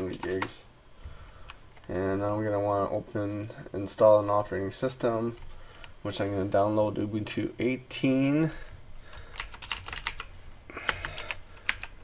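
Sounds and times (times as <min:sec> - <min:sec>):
computer keyboard typing: 0:00.0 - 0:00.6, 0:09.2 - 0:12.0.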